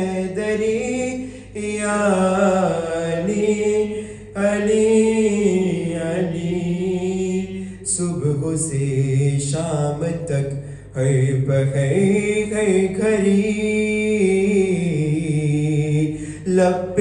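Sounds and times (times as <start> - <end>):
man chanting unaccompanied: 0.0 - 17.0.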